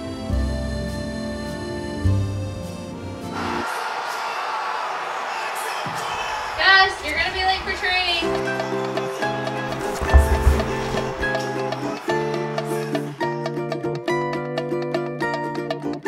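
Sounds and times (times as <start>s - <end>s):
low thump: 9.7s - 11.4s.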